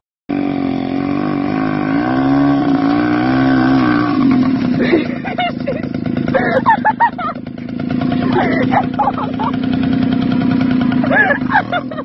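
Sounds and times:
moped engine running: 0.3s - 12.0s.

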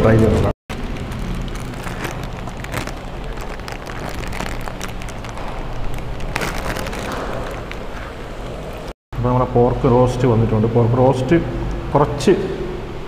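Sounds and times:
steady low hum: 0.0s - 13.0s
foil wrapper crinkling: 0.7s - 8.8s.

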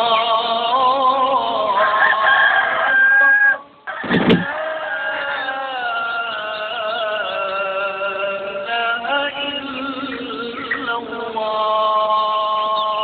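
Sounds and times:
rooster crowing: 1.6s - 6.6s.

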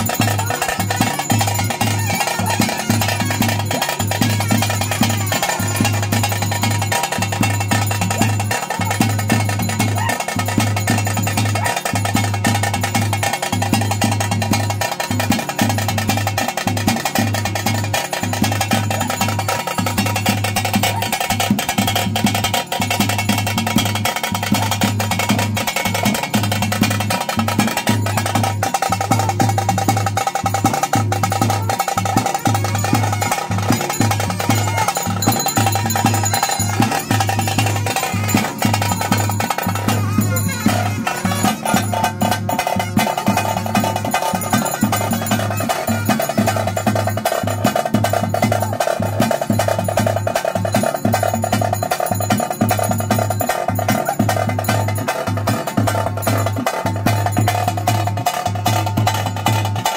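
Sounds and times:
loud continuous drumming: 0.0s - 59.9s.

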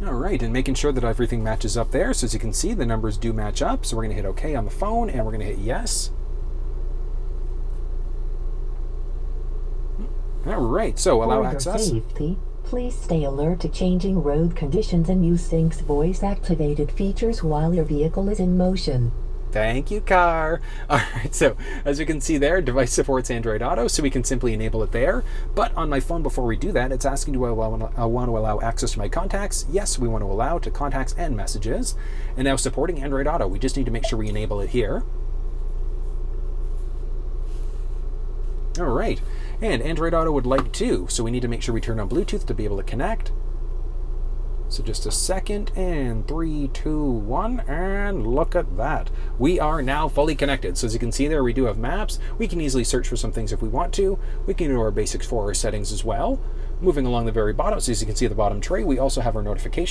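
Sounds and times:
faint hum: 0.0s - 59.9s
car engine idling: 13.8s - 26.3s.

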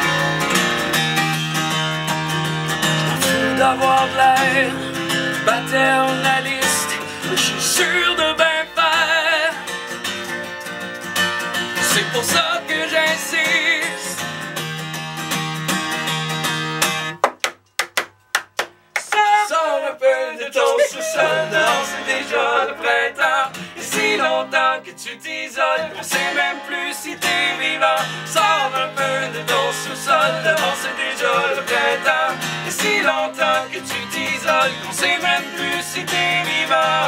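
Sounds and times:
acoustic guitar strumming chords: 0.0s - 19.6s, 20.4s - 37.0s
man singing with vibrato: 3.1s - 9.7s, 11.8s - 14.3s, 19.0s - 37.0s.

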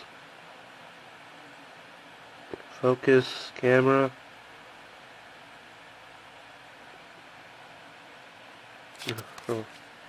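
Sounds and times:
faint recording hiss: 0.0s - 10.0s.

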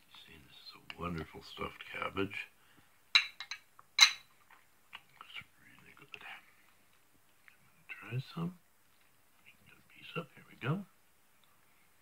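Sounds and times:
cutlery clinking on ceramic bowl: 3.2s - 4.3s.

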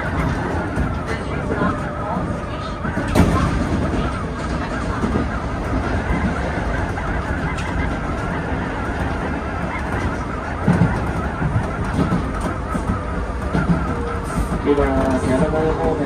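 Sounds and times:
train wheels rumbling on rails: 0.0s - 16.0s.

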